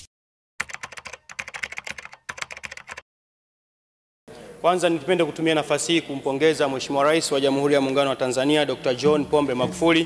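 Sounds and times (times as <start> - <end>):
computer keyboard typing: 0.6 - 3.0.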